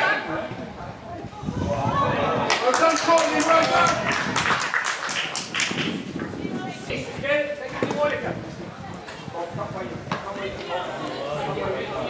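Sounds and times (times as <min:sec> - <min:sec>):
spectators clapping: 0:02.4 - 0:06.0.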